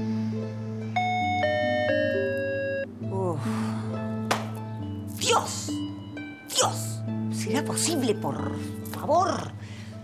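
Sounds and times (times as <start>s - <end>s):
soft chime-like meditative music: 0.0s - 4.1s.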